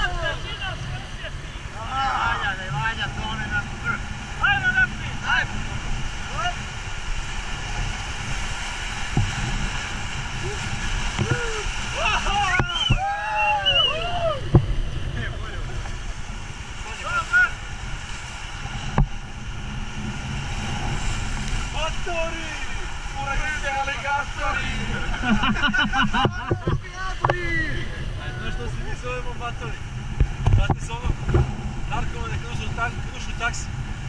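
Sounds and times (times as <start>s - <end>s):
wave breaking into boat: 0.0s - 34.0s
whitewater rushing and splashing: 0.0s - 34.0s
wind buffeting microphone: 0.0s - 34.0s
people shouting and whooping: 10.4s - 14.5s.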